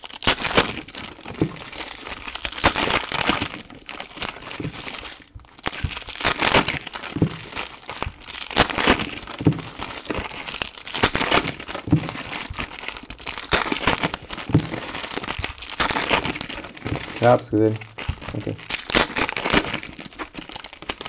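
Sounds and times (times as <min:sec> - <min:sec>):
foil wrappers crinkling and tearing: 0:00.0 - 0:21.0.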